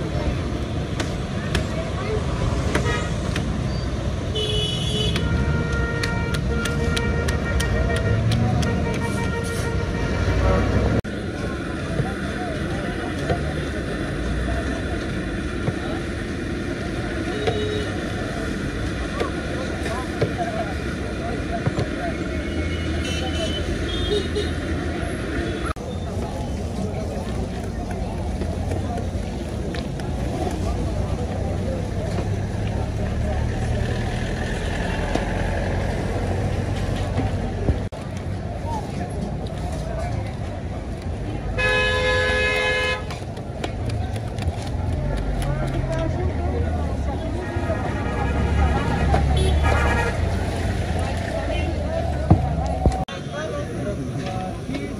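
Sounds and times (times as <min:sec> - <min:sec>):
people talking: 0:00.0 - 0:03.8, 0:04.4 - 0:54.9
traffic going by: 0:00.0 - 0:54.9.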